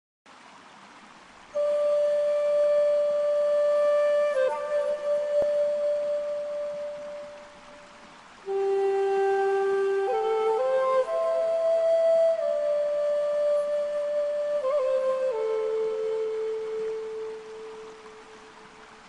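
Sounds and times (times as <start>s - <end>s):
solo flute long breathy notes: 1.5s - 19.0s.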